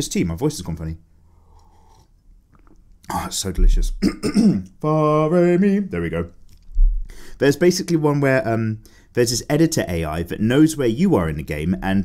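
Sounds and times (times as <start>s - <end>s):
low room hum: 0.0s - 12.0s
man sipping and swallowing: 1.5s - 3.1s.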